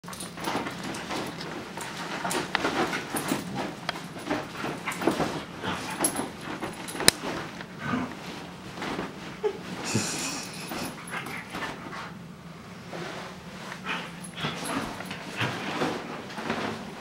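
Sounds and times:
bedding rustling: 0.0 - 17.0
dog breathy noises: 13.8 - 15.7.

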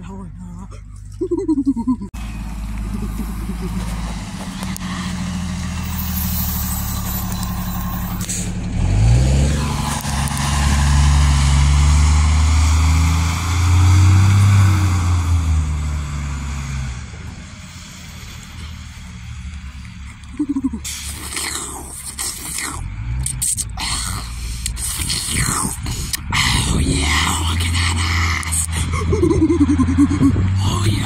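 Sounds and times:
bus engine accelerating: 0.0 - 31.0.

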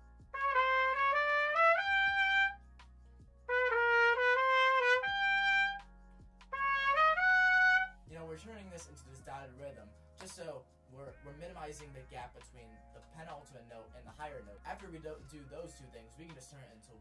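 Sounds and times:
solo trumpet playing: 0.4 - 2.6, 3.5 - 5.8, 6.5 - 8.0.

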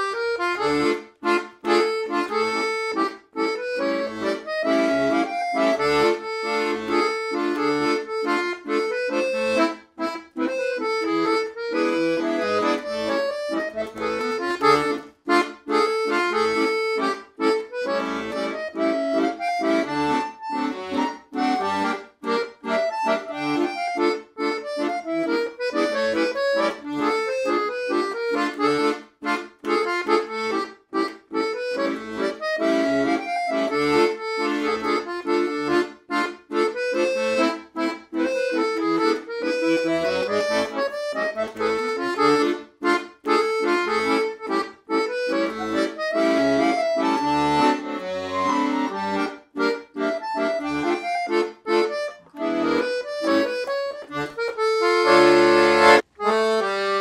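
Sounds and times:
accordion playing a tune: 0.0 - 57.0.

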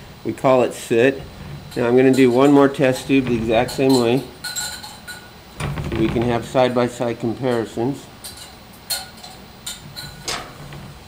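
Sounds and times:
metal clamp clinking on glass tube: 1.6 - 5.3, 7.4 - 10.5.

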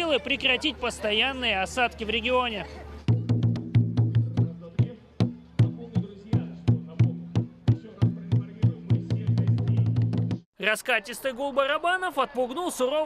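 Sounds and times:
barrel drum beaten by hand: 3.1 - 10.5.

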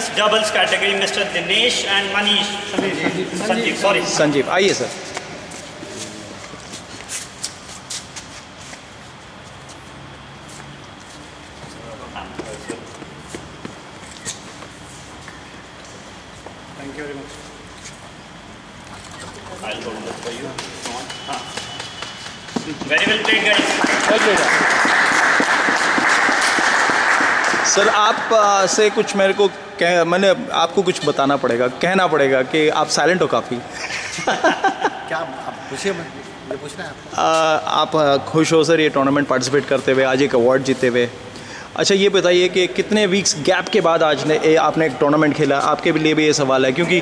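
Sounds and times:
room noise: 0.0 - 47.0
crowd applauding: 20.2 - 29.1.

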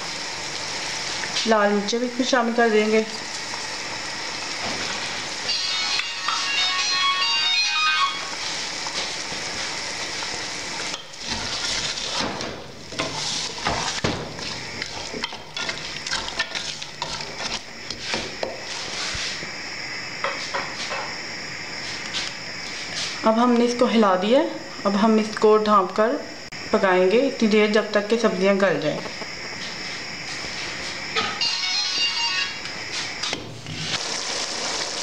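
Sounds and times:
vegetables sizzling in oil: 0.0 - 24.0, 29.0 - 35.0
wooden spoon scraping pot: 12.9 - 14.0.

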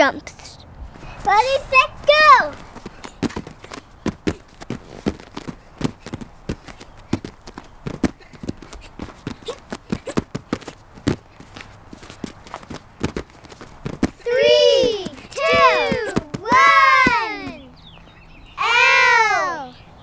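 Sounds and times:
bare feet thudding on mat: 0.9 - 17.6.

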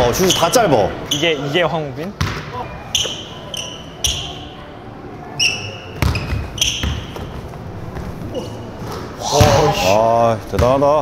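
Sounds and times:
sneakers squeaking on floor: 0.3 - 1.4, 2.2 - 4.5, 5.4 - 10.0
basketball bouncing on gym court: 2.2 - 2.5, 6.0 - 7.4.

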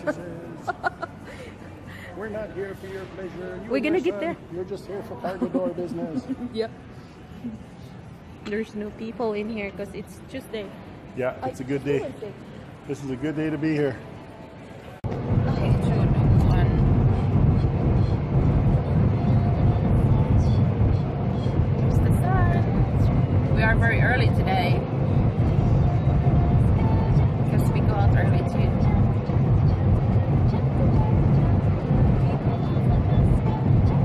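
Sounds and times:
road and engine rumble: 0.0 - 34.0.

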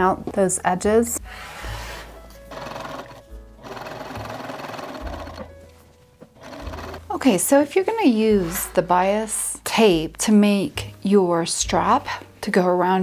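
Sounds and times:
background music: 0.0 - 13.0
sewing machine stitching: 2.5 - 5.5, 6.4 - 7.3.

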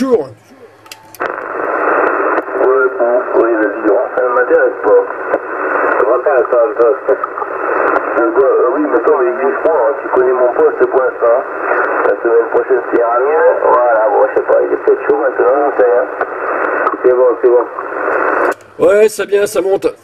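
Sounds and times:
faint steady hum: 0.0 - 20.0
radio voice band-limited speech: 0.0 - 20.0.

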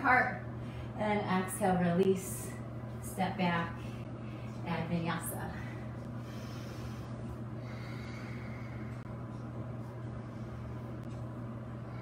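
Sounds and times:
low steady hum: 0.0 - 12.0
person breathing: 5.7 - 9.0.

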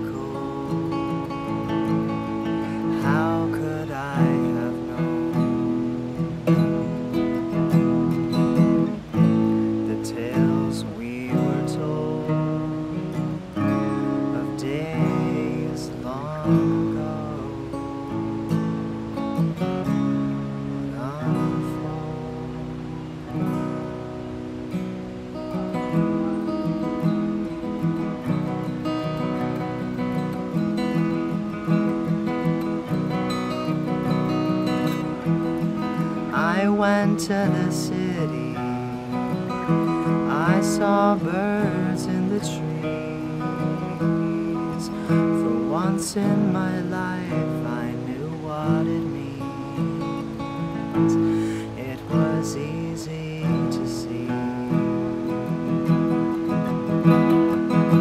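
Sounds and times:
acoustic guitar strumming chords: 0.0 - 58.0.

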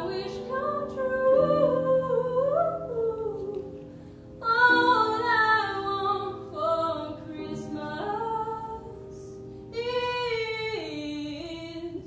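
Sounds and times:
woman singing slow melody: 0.0 - 12.0.

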